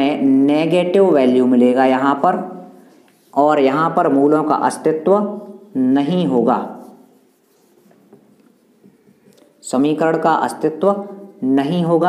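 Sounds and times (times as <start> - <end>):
marker pen writing on board: 6.8 - 9.5.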